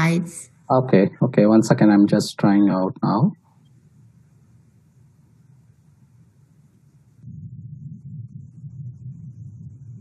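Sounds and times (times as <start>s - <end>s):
faint hiss: 0.0s - 10.0s
low rumbling noise: 3.9s - 10.0s.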